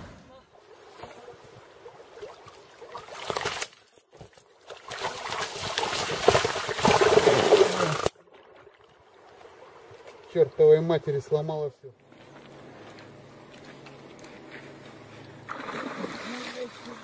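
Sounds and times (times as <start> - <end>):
water splashing and churning: 0.0 - 10.9, 15.4 - 17.0.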